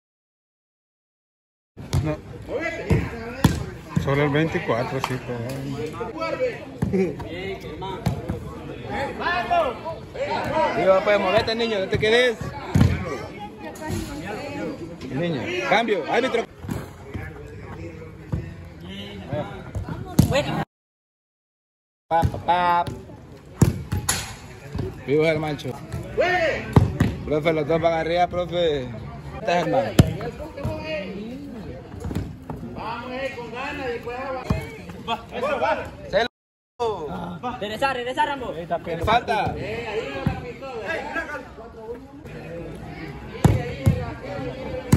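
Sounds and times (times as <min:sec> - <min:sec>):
football being kicked: 0:02.9 - 0:03.8, 0:29.9 - 0:30.8.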